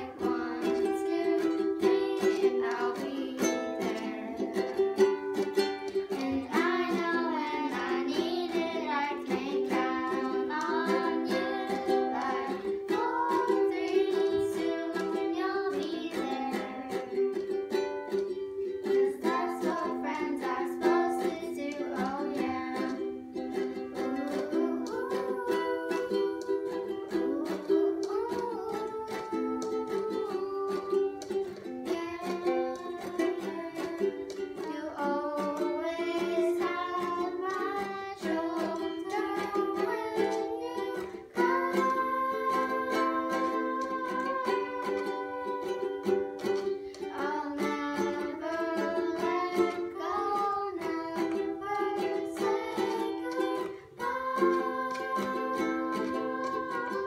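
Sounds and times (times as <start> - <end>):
girls singing a pop song: 0.0 - 57.0
strummed ukulele: 0.0 - 57.0.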